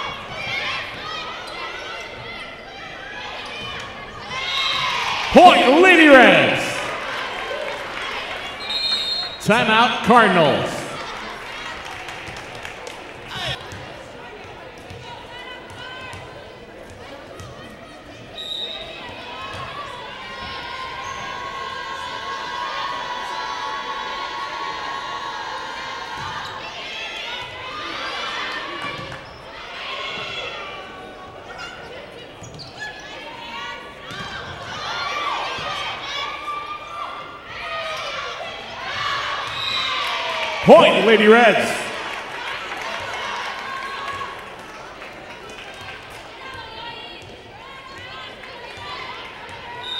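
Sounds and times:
crowd chatter: 5.1 - 8.4, 9.4 - 12.0, 40.6 - 42.8.

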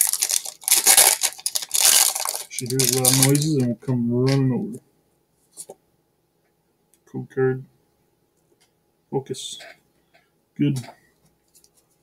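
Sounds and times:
foil wrapper crinkling and tearing: 0.0 - 3.6.

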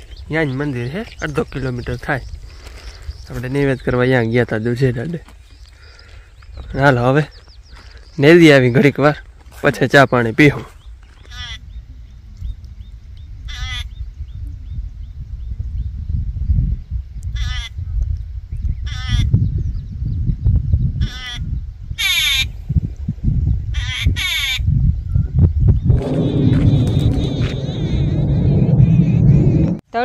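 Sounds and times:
wind rumble on microphone: 0.0 - 30.0
bird quavering calls: 11.1 - 11.8, 13.5 - 14.0, 17.4 - 17.8, 18.8 - 19.3, 21.0 - 21.4, 22.0 - 22.5, 23.7 - 24.6.

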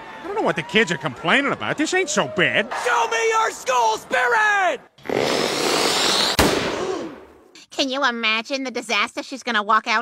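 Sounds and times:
cartoon firework blast effect: 5.1 - 7.3.

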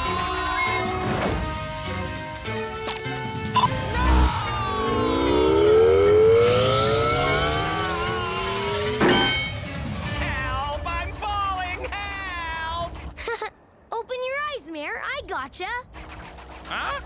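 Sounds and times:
dramatic background music: 0.0 - 13.2
long rising whine: 3.9 - 9.0
loud clank: 9.0 - 9.8.

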